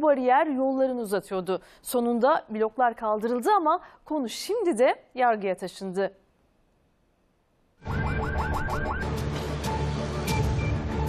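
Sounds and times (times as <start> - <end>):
ambulance siren yelping: 7.8 - 9.2.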